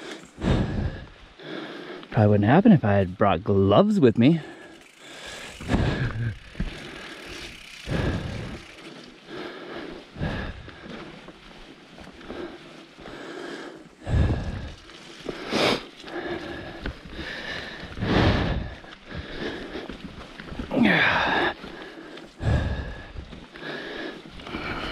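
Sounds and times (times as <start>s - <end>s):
bike tyre and rattle: 0.0s - 1.2s, 2.2s - 24.9s.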